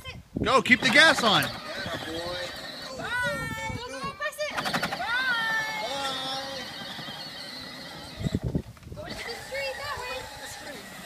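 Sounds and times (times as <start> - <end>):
toddler's wordless calls: 1.0 - 11.0.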